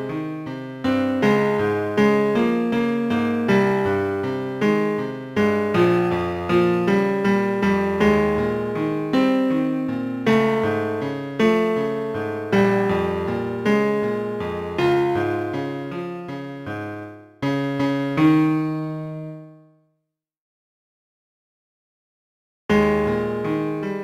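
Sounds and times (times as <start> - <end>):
computer-generated piano piece: 0.0 - 19.9, 22.7 - 24.0.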